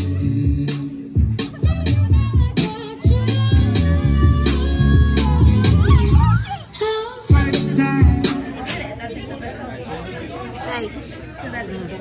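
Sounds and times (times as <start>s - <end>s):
music with singing: 0.0s - 8.9s
people talking indistinctly: 0.0s - 12.0s.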